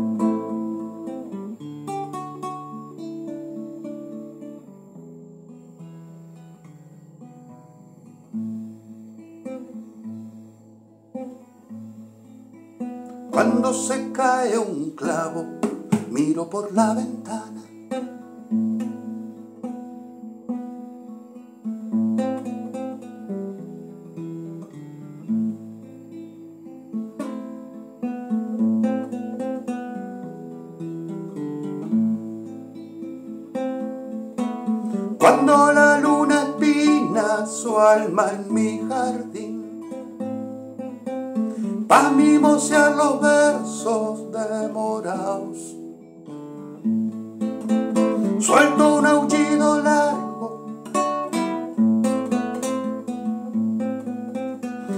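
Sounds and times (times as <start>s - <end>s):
classical guitar plucked chords: 0.0s - 54.9s.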